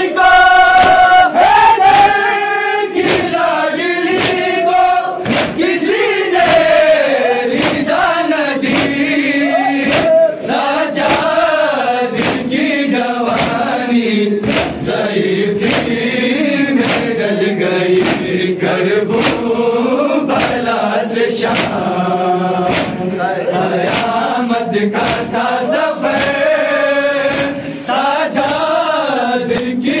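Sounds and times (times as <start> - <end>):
men chanting in chorus: 0.0 - 30.0
hands slapping chests: 0.7 - 1.1, 1.8 - 2.2, 3.0 - 3.4, 4.0 - 4.6, 5.2 - 5.8, 6.4 - 6.8, 7.5 - 8.0, 8.6 - 9.1, 9.8 - 10.3, 11.0 - 11.4, 12.1 - 12.6, 13.3 - 13.8, 14.4 - 14.9, 15.6 - 16.0, 16.8 - 17.2, 18.0 - 18.4, 19.0 - 19.5, 20.3 - 20.7, 21.4 - 21.9, 22.6 - 23.2, 23.8 - 24.3, 25.0 - 26.5, 27.2 - 27.8, 28.4 - 28.8, 29.5 - 29.8.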